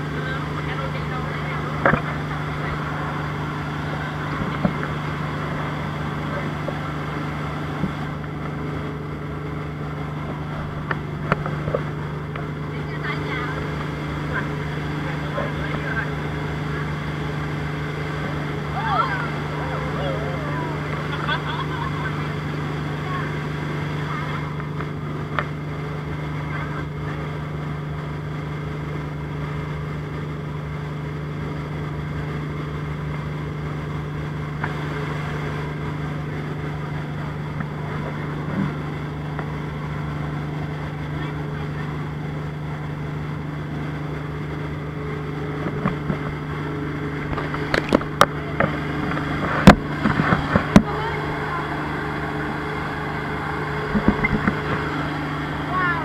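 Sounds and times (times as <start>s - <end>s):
motorboat engine droning: 0.0s - 56.0s
rushing water: 0.0s - 56.0s
wind: 0.0s - 56.0s.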